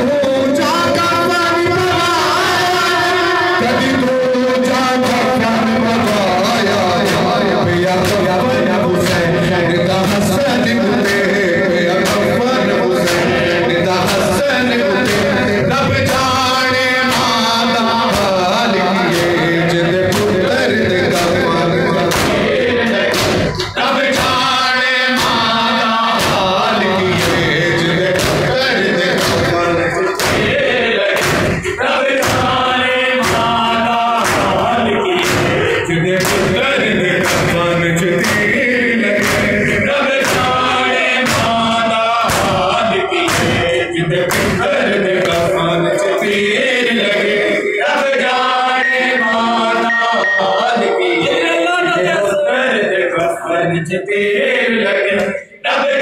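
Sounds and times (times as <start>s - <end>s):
men chanting a lament: 0.0s - 56.0s
chest beating strikes: 18.0s - 44.7s.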